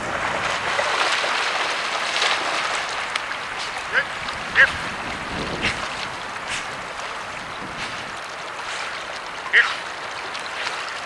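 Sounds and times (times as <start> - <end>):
splashing water: 0.0 - 11.0
rustling dry reeds: 0.4 - 10.9.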